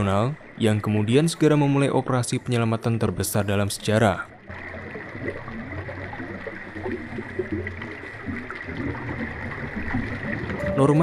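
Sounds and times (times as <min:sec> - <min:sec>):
water bubbling underwater: 0:03.6 - 0:11.0
faint steady high tone: 0:10.2 - 0:11.0.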